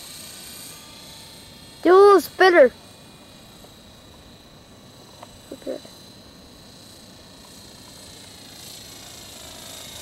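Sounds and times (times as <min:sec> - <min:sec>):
rc helicopter motor whine: 0:00.0 - 0:10.0.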